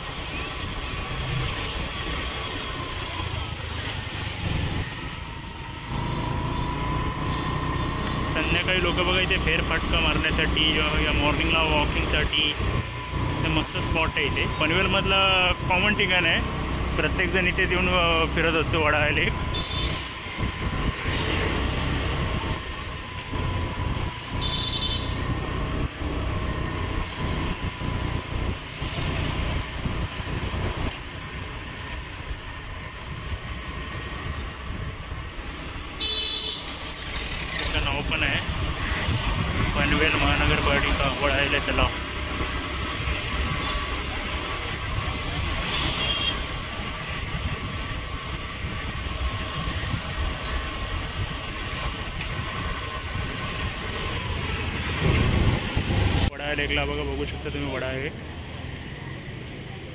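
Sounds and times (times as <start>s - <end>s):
traffic engines running: 0.0s - 59.9s
car horn toots: 36.0s - 36.7s.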